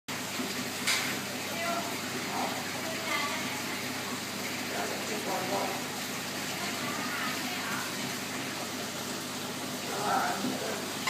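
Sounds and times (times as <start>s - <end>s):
aquarium filter rushing water: 0.1s - 11.0s.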